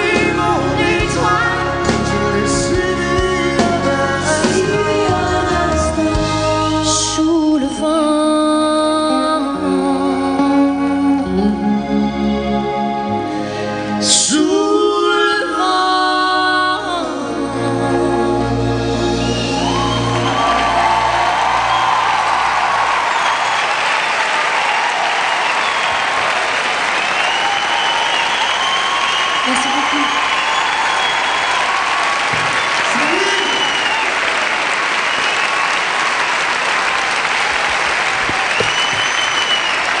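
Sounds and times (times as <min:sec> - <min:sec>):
audience applauding: 0:19.3 - 0:40.0
whoops: 0:19.3 - 0:40.0.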